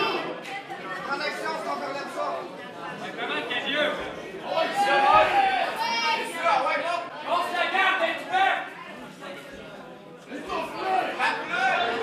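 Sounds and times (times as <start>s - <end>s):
crowd voices echoing in hall: 0.0s - 12.0s.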